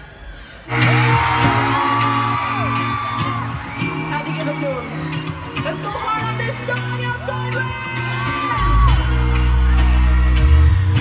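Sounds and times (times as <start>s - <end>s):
live rock band: 0.7s - 11.0s.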